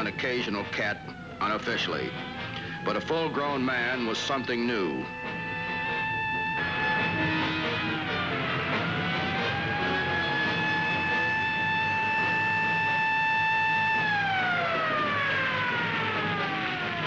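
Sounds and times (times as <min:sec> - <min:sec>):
truck siren wailing: 0:00.0 - 0:17.0.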